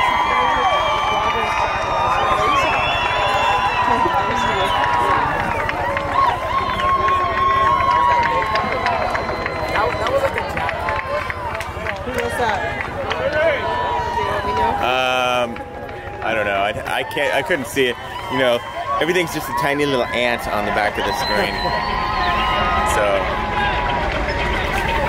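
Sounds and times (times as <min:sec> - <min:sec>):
crowd shouting and calling: 0:00.0 - 0:25.0.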